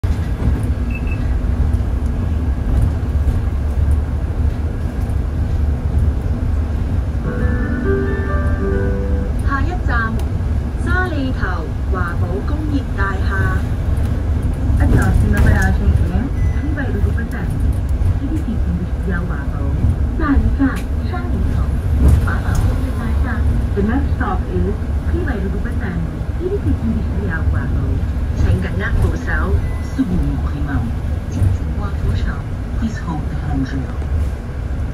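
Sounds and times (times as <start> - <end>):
bus cabin rumble: 0.0 - 34.9
recorded announcement voice: 7.2 - 13.7, 14.7 - 34.1
electronic chime: 7.3 - 9.3.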